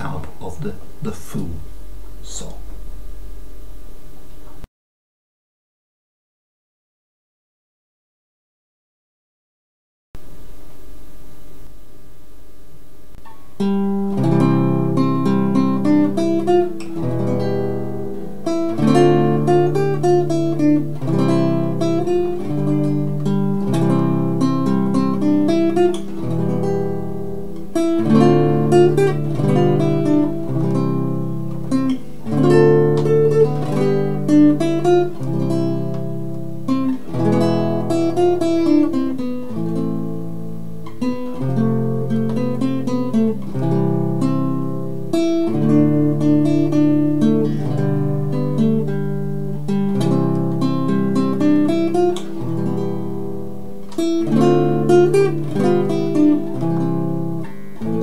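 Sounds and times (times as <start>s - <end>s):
classical guitar hymn tune: 13.1s - 58.0s.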